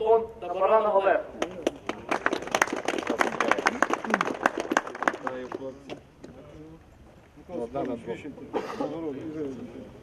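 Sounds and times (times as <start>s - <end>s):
hands clapping: 1.4s - 5.7s.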